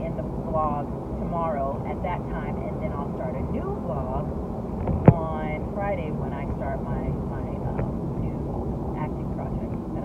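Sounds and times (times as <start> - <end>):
woman's voice: 0.0 - 4.3, 5.1 - 10.0
car road and engine rumble: 0.0 - 10.0.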